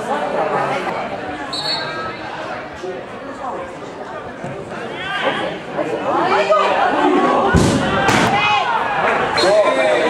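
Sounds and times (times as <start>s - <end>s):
voices shouting and calling: 4.8s - 10.0s
hard thud: 7.5s - 8.6s.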